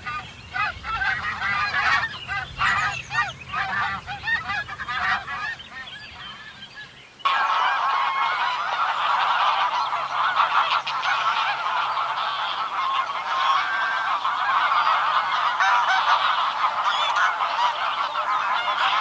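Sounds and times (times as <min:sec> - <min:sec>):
geese honking: 0:00.0 - 0:19.0.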